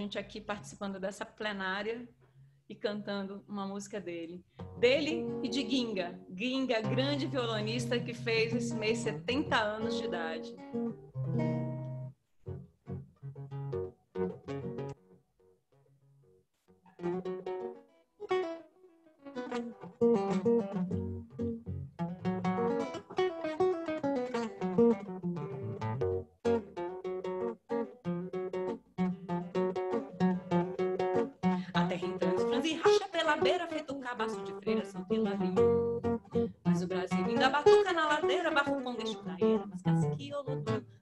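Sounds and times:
nylon-string guitar fingerpicking: 4.5s - 15.2s, 16.2s - 41.0s.

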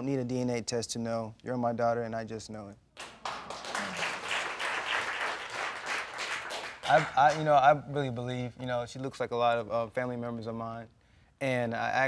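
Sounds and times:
crowd applauding: 3.0s - 7.5s
person speaking: 6.9s - 8.7s.

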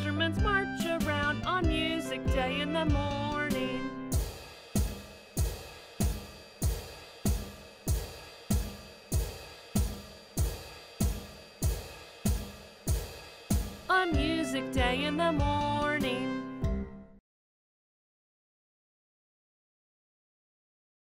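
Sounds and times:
drum and cymbal marching beat: 4.1s - 14.9s.

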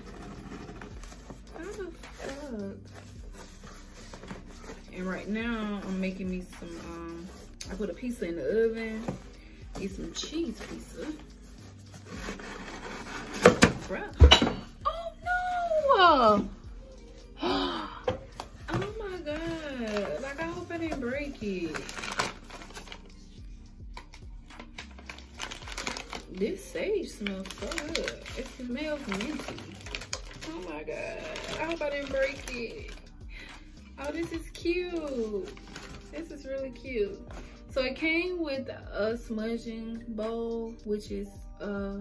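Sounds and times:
paper wrap crinkling: 0.0s - 8.0s, 9.8s - 13.9s, 18.7s - 23.1s, 24.0s - 33.0s, 34.0s - 36.3s
objects rubbing and rustling: 0.0s - 14.8s, 18.1s - 23.4s, 24.0s - 36.4s
voice-like melody: 14.8s - 16.8s.

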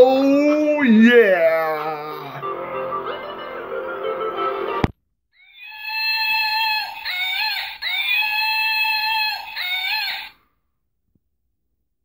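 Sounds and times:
high-pitched screeching call: 5.4s - 10.4s.

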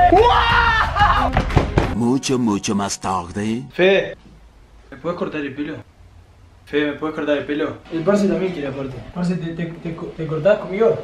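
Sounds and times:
young men shouting excitedly: 0.0s - 1.4s.

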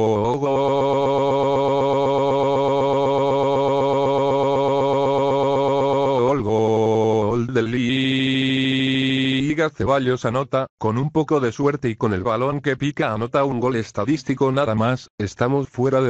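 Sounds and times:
synthesized voice holding vowel: 0.0s - 9.6s.

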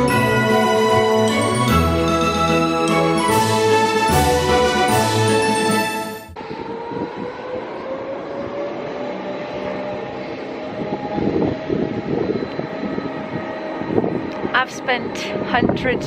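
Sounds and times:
wind buffeting microphone: 6.4s - 16.0s.

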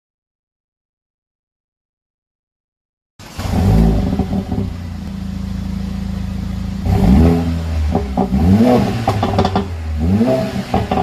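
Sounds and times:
car engine idling and revving: 3.2s - 11.0s.

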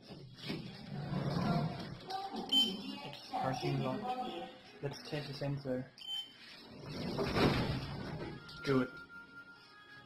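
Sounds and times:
short high beep: 6.0s - 6.4s
elevator doors sliding: 6.6s - 8.4s.

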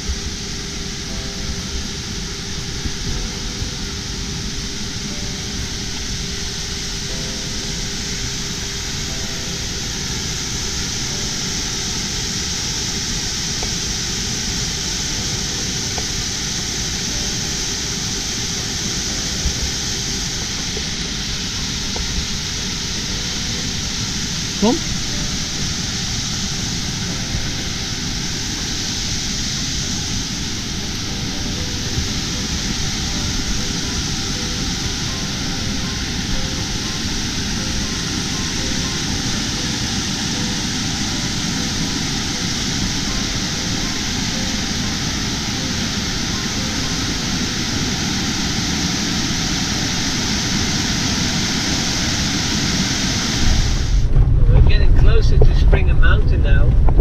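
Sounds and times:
water rushing over rocks: 7.4s - 56.0s.

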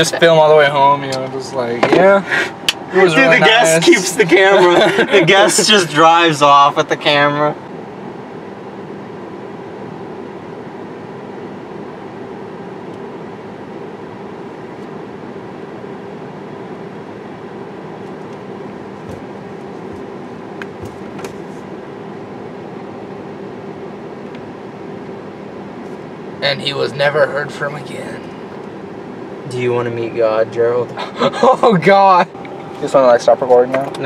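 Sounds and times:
car cabin hum: 0.0s - 34.0s.

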